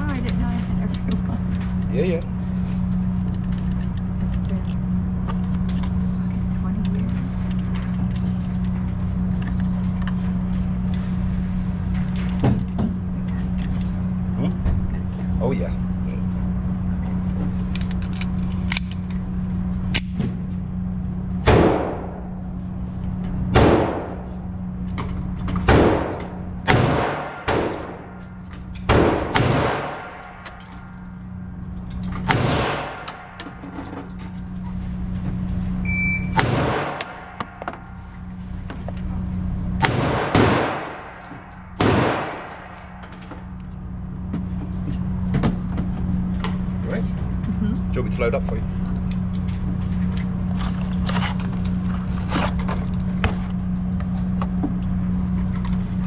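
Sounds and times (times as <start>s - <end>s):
steady low hum: 0.0s - 56.0s
pistol shots echoing indoors: 25.7s - 28.2s, 28.9s - 30.6s, 32.3s - 33.3s, 36.3s - 37.6s, 39.8s - 41.2s, 41.8s - 43.0s.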